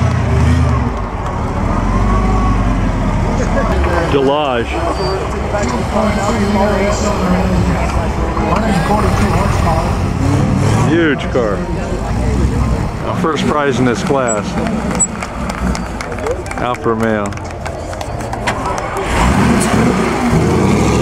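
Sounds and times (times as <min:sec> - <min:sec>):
car engine running at low speed: 0:00.0 - 0:21.0
people talking: 0:01.6 - 0:10.2, 0:10.8 - 0:15.1, 0:16.0 - 0:17.4.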